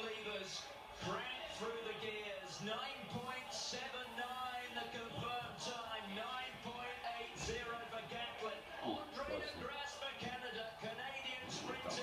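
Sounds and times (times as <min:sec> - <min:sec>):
music underneath voices: 0:00.0 - 0:12.0
television voices: 0:00.0 - 0:12.0.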